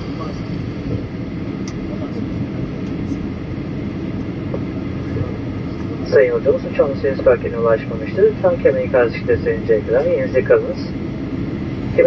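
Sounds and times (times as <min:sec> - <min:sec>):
aircraft cabin engine rumble: 0:00.0 - 0:12.0.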